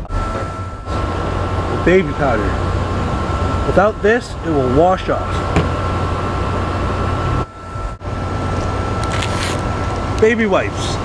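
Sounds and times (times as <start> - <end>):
faint high whine: 0.0 - 11.0
machinery humming with hiss: 0.0 - 11.0.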